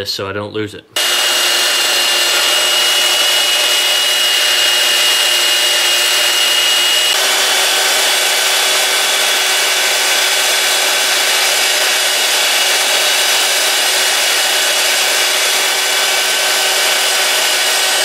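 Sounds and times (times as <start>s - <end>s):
belt sander grinding: 1.0s - 18.0s.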